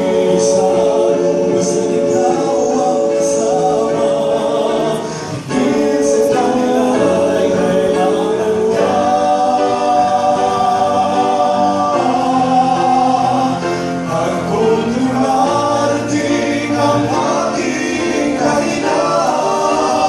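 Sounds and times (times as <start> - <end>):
male vocal quartet singing gospel: 0.0 - 20.0.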